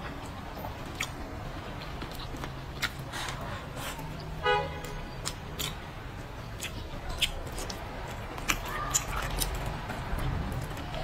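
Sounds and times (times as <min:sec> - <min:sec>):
wet chewing and sucking: 0:00.2 - 0:04.4, 0:05.1 - 0:11.0.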